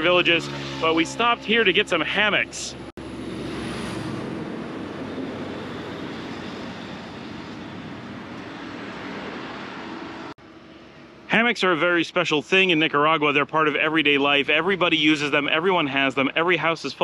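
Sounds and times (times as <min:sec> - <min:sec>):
highway traffic: 0:00.0 - 0:17.0.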